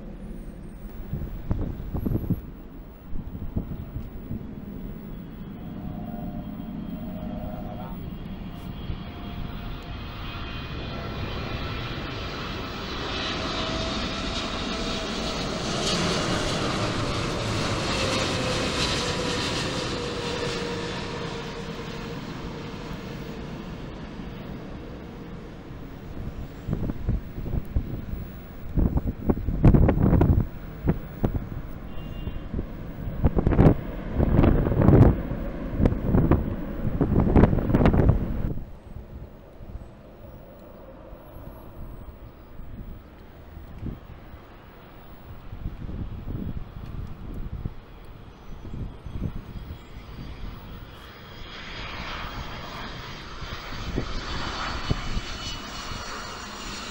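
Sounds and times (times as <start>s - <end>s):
wind buffeting microphone: 0.0s - 44.5s, 45.2s - 56.9s
jet airliner passing low: 0.0s - 56.9s.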